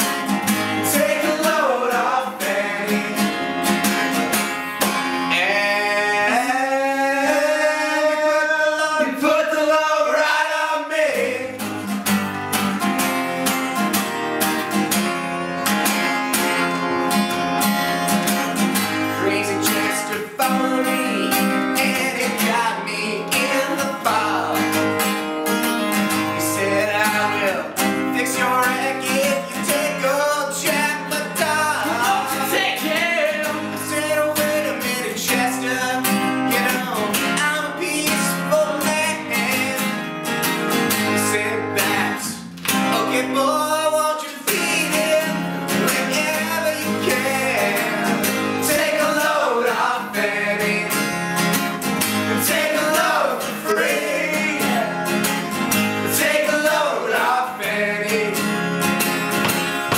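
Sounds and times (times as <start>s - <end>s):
man singing: 0.0s - 4.4s, 5.1s - 11.7s, 18.5s - 25.3s, 26.0s - 40.1s, 40.9s - 51.6s, 52.3s - 58.8s
acoustic guitar strumming: 0.0s - 59.9s.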